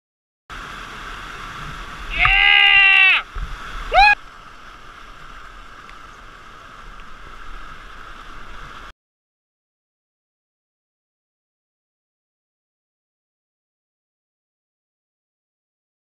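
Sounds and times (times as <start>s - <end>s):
rushing whitewater waterfall: 0.5s - 8.9s
person yelling: 2.1s - 3.2s, 3.9s - 4.2s
rising whoop: 2.1s - 3.3s, 3.9s - 4.2s.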